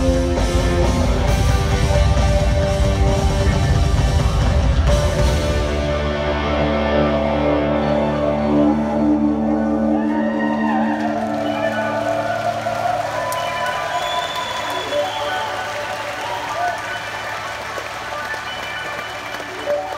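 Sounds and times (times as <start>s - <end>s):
deep bass: 0.0s - 12.7s
rock band sustained chord: 0.0s - 13.1s
audience voices: 0.0s - 19.9s
audience applause: 10.0s - 19.9s.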